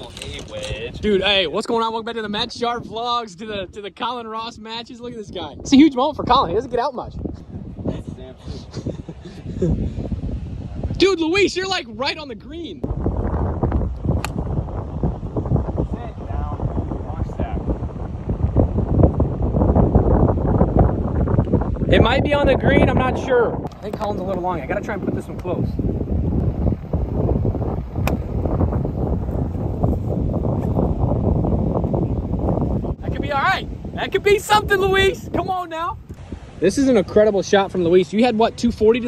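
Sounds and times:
wind buffeting microphone: 0.0s - 39.0s
golf club striking ball: 14.1s - 14.5s, 27.9s - 28.6s.

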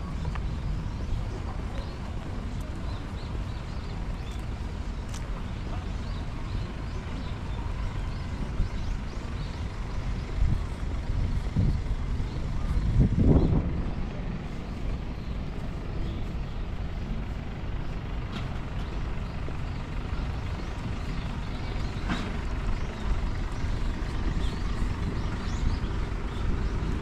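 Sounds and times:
low outdoor rumble: 0.0s - 27.0s.

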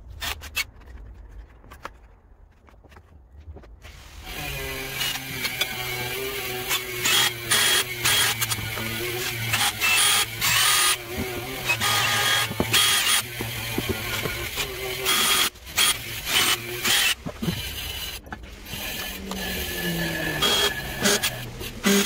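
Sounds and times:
cordless drill drilling into wood: 4.2s - 22.0s.

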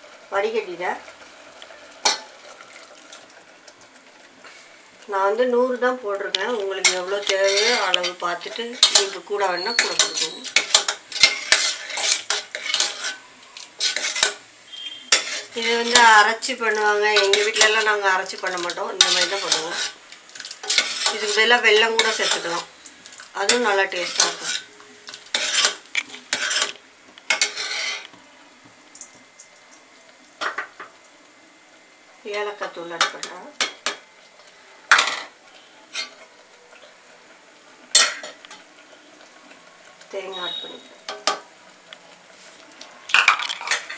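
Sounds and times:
ladle scraping metal pot: 6.8s - 16.1s, 17.1s - 22.7s, 23.4s - 24.7s, 25.3s - 28.1s.

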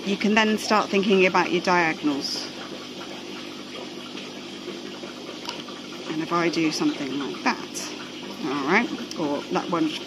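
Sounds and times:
low pump hum: 0.0s - 10.0s
trickling and rushing water: 0.0s - 10.0s.

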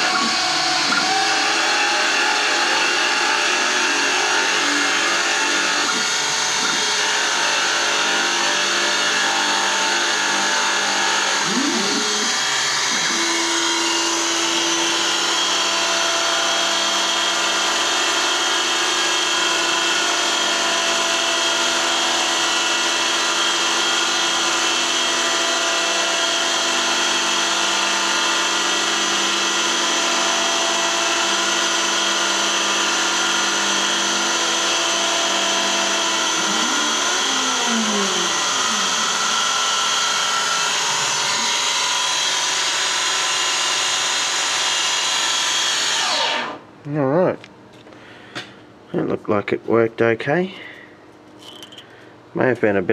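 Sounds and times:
lathe machine whine: 0.0s - 46.6s.

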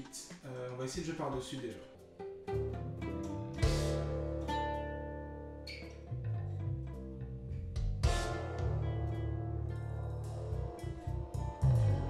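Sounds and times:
recorded guitar playback: 0.0s - 12.0s
acoustic guitar playing: 1.4s - 12.0s.

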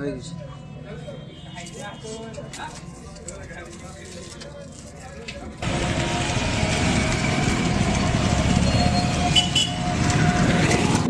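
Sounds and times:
motor traffic street noise: 0.0s - 11.0s.

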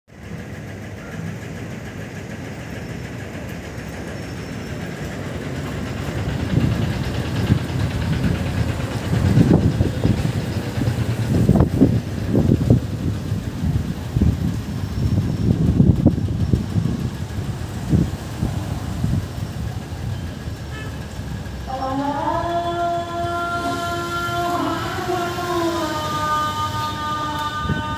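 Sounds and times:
road traffic engine rumble: 0.1s - 27.9s.

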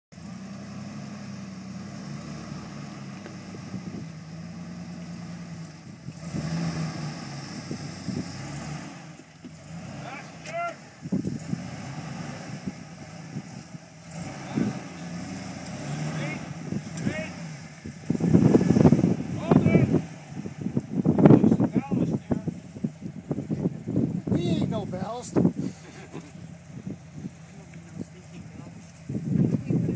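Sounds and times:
engine running at low revs: 0.1s - 29.9s.

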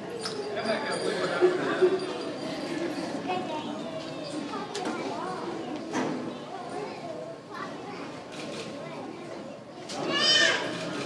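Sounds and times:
children murmuring: 0.0s - 11.0s
child squealing: 10.0s - 10.8s.

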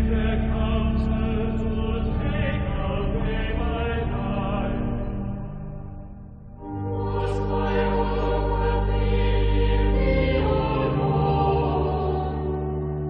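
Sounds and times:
held low tones: 0.0s - 12.8s
chanted sacred vocal music: 0.0s - 13.0s.

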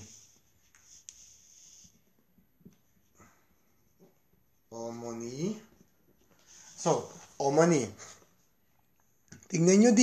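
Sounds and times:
writing scratching on surface: 0.0s - 3.0s.

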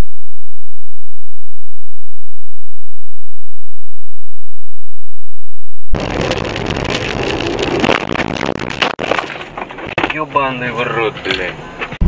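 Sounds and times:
wind noise: 5.9s - 9.9s
car engine: 6.0s - 10.2s.

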